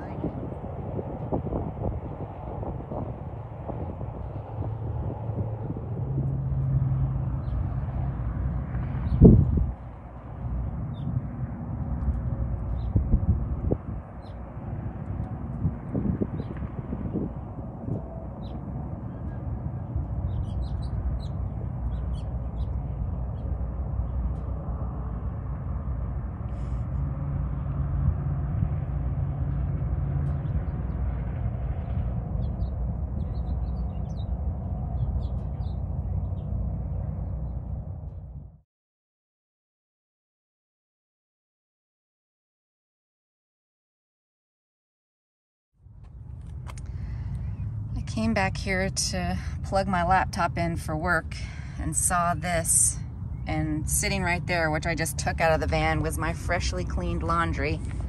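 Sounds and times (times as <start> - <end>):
steady low rumble: 0.0 - 38.6, 45.8 - 58.0.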